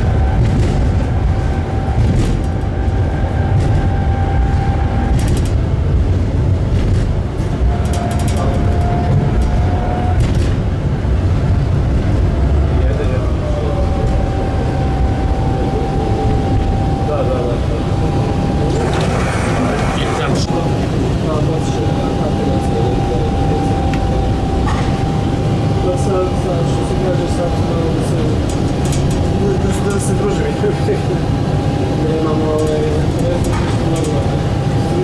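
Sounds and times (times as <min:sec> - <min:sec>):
tram rumbling on track: 0:00.0 - 0:35.0.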